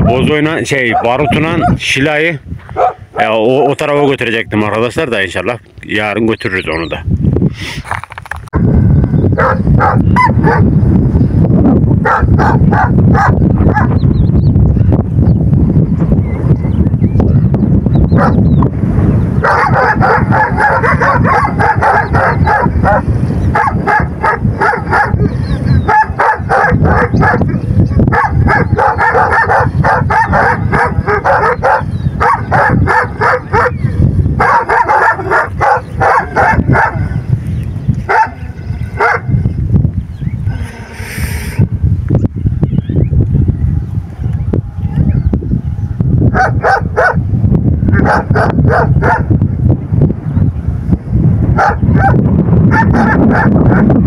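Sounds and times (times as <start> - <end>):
large dogs barking: 0.0 - 1.9, 2.7 - 3.8, 9.4 - 10.8, 12.0 - 14.0, 18.1 - 18.5, 19.4 - 37.3, 38.0 - 39.4, 46.3 - 47.2, 47.9 - 49.4, 51.5 - 54.0.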